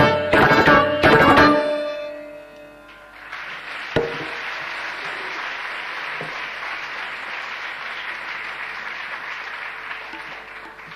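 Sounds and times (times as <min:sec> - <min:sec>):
audience applauding: 0:03.2 - 0:10.9
sharp thump: 0:04.0 - 0:04.4.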